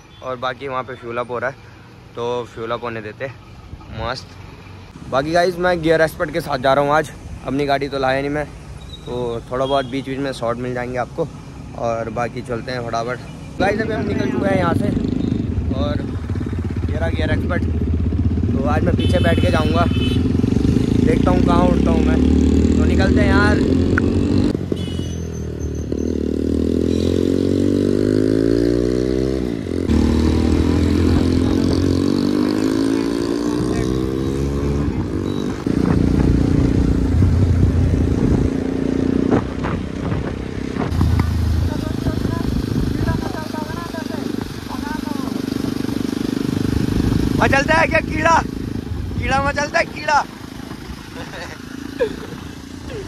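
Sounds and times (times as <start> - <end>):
motorcycle engine accelerating: 13.6 - 53.0.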